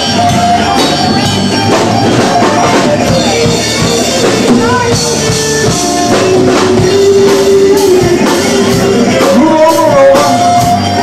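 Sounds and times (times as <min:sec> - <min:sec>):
lead guitar bending notes: 0:00.0 - 0:11.0
rock band playing blues: 0:00.0 - 0:11.0.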